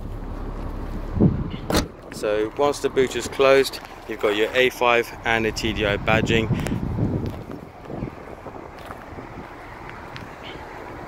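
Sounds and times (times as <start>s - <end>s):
wind rumble on microphone: 0.0s - 2.2s, 5.1s - 11.0s
boot lid latching thump: 1.5s - 2.0s.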